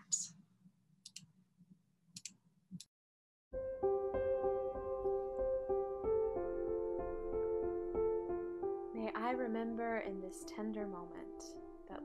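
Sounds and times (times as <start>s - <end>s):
computer mouse clicks: 1.0s - 1.3s, 2.2s - 2.9s.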